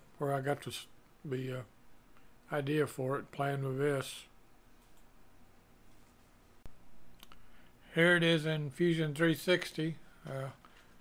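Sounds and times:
computer mouse clicks: 0:04.8 - 0:05.1.

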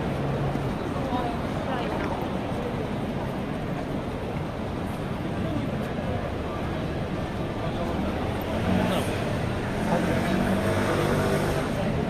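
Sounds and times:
passersby talking: 0:00.0 - 0:12.0
road traffic hum: 0:00.0 - 0:12.0.

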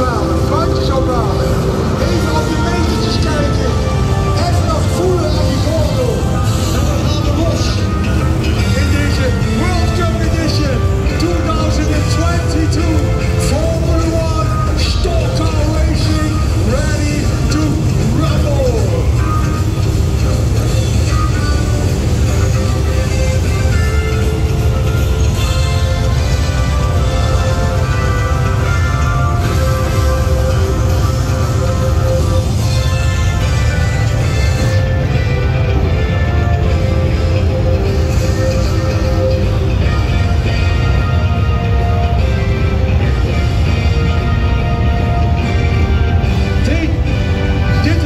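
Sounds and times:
music over loudspeakers: 0:00.0 - 0:48.0
race car engines rumbling: 0:00.0 - 0:48.0
voice over loudspeakers: 0:00.0 - 0:48.0.

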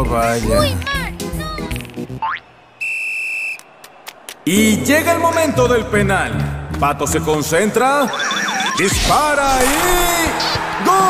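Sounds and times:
high whistle tone: 0:02.8 - 0:03.7.

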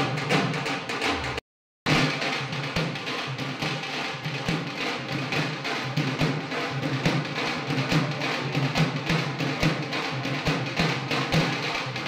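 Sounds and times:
drums in fast dance rhythm: 0:00.0 - 0:12.0.

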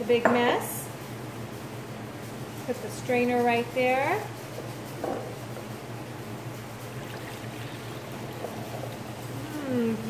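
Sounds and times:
steady low hum: 0:00.8 - 0:10.0
juice pouring through a strainer: 0:06.5 - 0:09.6.

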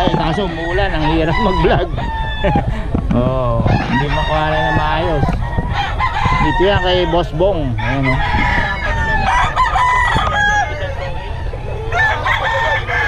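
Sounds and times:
roosters crowing: 0:00.0 - 0:13.0.

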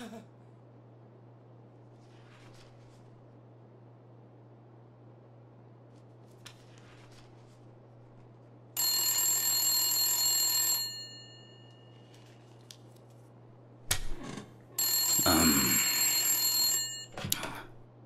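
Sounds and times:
desk telephone ringing: 0:08.8 - 0:12.3, 0:14.8 - 0:17.3.

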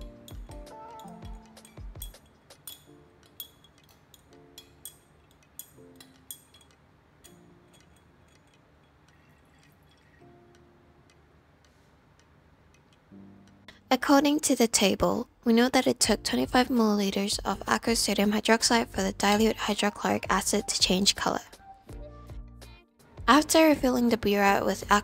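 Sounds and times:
glass rod clinking in flask: 0:00.0 - 0:10.2
soft background music: 0:00.0 - 0:25.0.

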